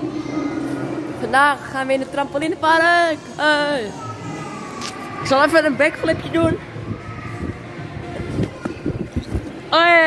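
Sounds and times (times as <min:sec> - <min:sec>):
camera handling rubbing and knocking: 0:08.4 - 0:09.6.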